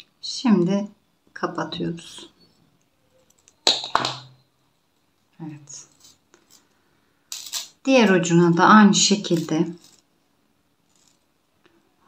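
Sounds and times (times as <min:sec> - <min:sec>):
metal chain rustling: 0:05.9 - 0:06.7, 0:07.3 - 0:07.8, 0:09.3 - 0:10.1.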